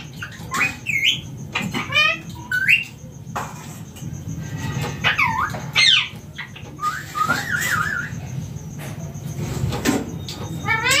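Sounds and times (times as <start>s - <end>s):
parakeet squawking: 0.0s - 3.0s, 4.6s - 8.2s, 10.5s - 11.0s.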